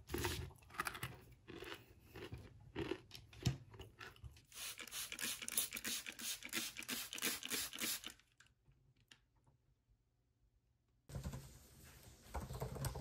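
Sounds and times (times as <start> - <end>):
crunching and chewing: 0.0 - 4.5.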